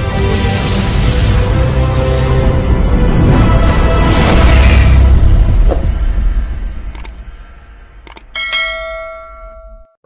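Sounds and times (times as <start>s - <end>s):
notification bell chime: 8.4s - 10.0s.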